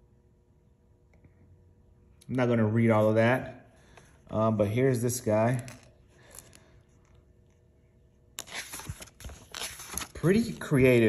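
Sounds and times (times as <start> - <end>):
book pages turning: 8.4 - 11.0.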